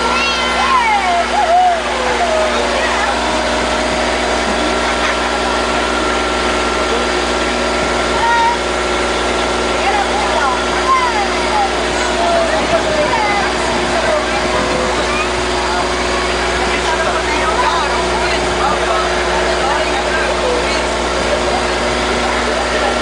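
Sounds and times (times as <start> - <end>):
child calling out: 0.0 - 3.0, 8.2 - 8.7, 10.8 - 13.8
boat motor running: 0.0 - 23.0.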